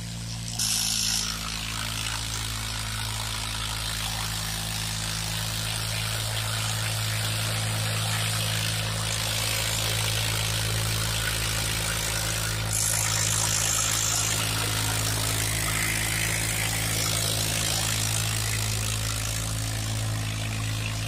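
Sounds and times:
tractor diesel engine under load: 0.0 - 21.0.

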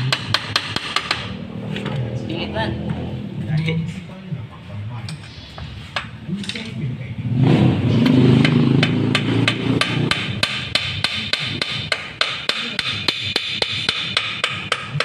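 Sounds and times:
low rumble: 1.3 - 9.6.

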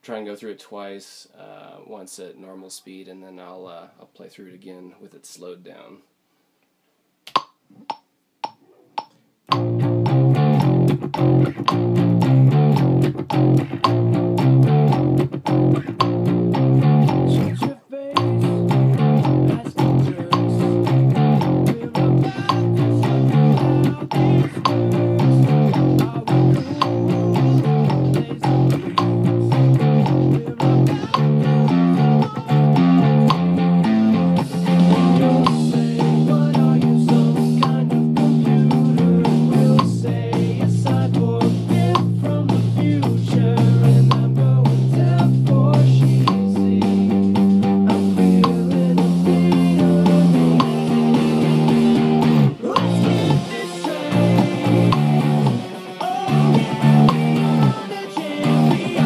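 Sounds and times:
electric bass guitar: 9.0 - 59.0.

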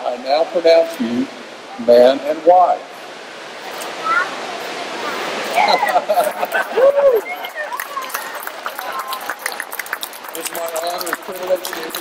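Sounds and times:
people applauding: 5.6 - 12.0.

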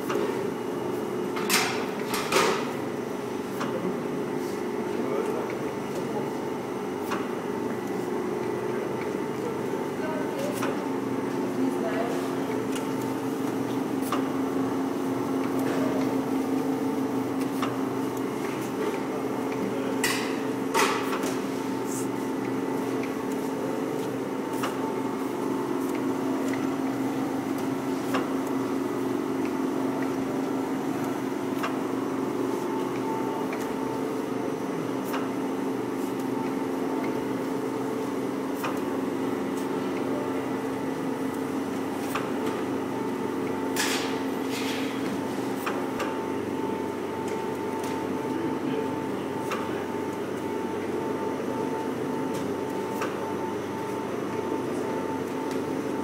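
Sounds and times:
vacuum pump humming: 0.0 - 56.0.

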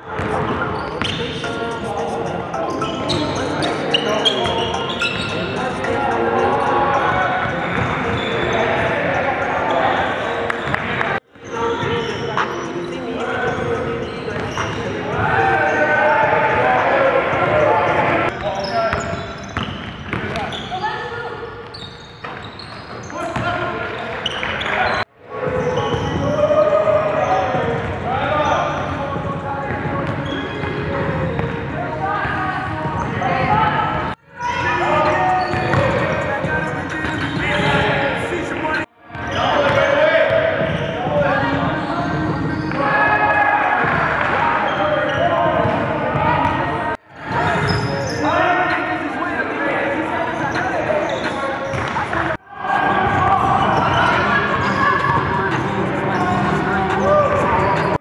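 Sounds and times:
indistinct voices: 0.0 - 58.0.

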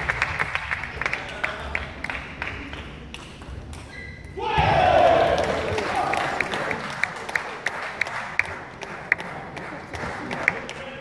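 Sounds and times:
applause and crowd noise: 0.0 - 3.3, 5.1 - 11.0.

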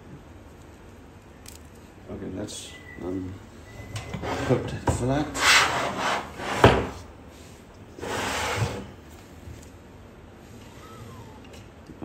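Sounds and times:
hands scraping metal frame: 3.9 - 7.0.

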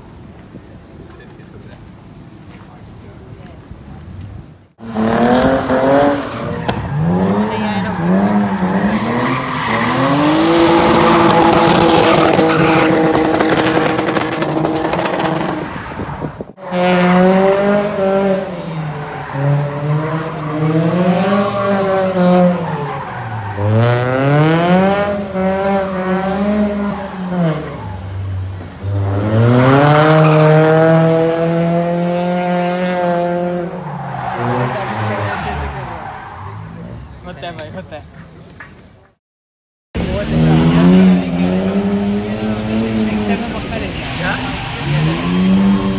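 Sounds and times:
car engine revving hard: 4.8 - 15.8, 16.5 - 23.0, 23.6 - 27.8, 28.8 - 36.0, 40.0 - 45.9.

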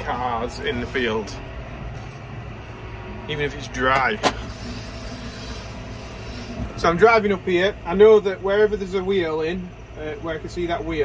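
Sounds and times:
tractor engine droning: 0.0 - 11.0.

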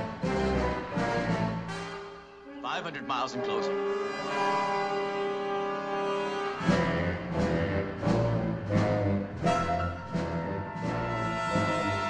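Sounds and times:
sustained string and brass chord: 0.4 - 7.3.

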